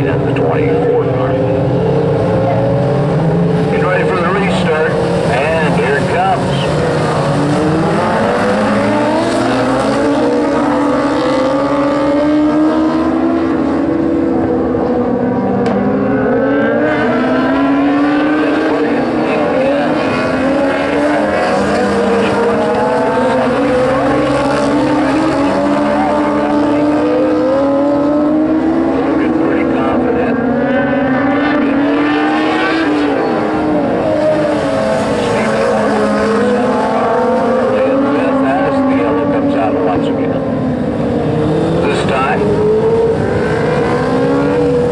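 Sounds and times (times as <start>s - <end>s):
race car engines revving: 0.0s - 44.9s.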